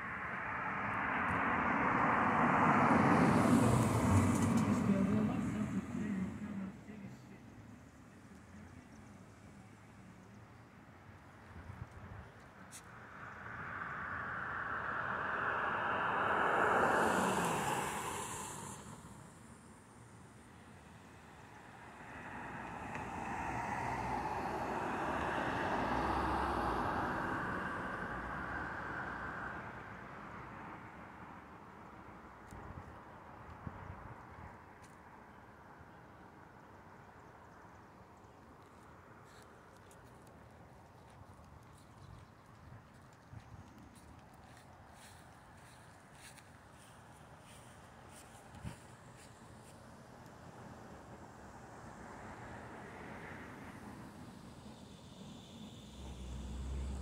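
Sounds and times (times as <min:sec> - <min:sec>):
vehicle passing by: 0:00.0 - 0:07.2, 0:12.7 - 0:31.1, 0:40.9 - 0:57.0
faint outdoor background: 0:00.0 - 0:57.0
rushing noise with low rumble: 0:12.9 - 0:19.8.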